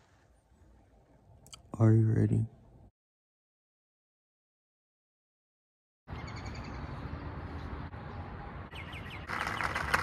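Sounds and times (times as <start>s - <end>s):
small birds chirping: 6.1s - 9.9s.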